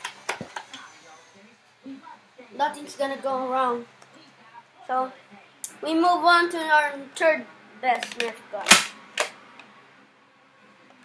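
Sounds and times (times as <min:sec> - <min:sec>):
plastic toy handling: 0:08.0 - 0:09.3.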